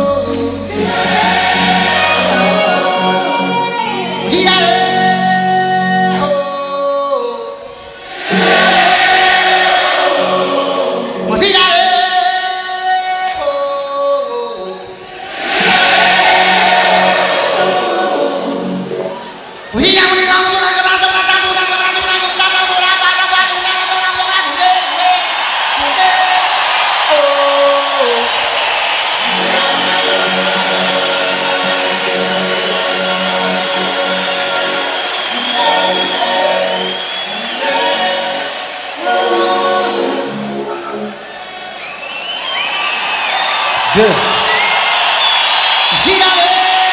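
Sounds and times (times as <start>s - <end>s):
choir singing wordless chant: 0.0s - 6.3s, 8.0s - 11.4s, 15.2s - 19.1s, 29.2s - 40.7s
large crowd: 0.0s - 46.9s.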